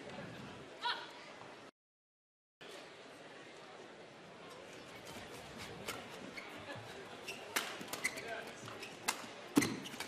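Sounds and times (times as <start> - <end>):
sports hall hum: 0.0 - 1.7, 2.6 - 10.0.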